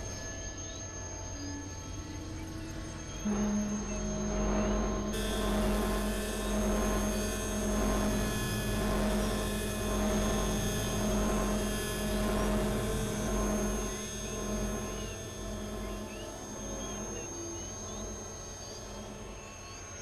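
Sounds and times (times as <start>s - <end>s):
synthesizer drone: 0.0s - 20.0s.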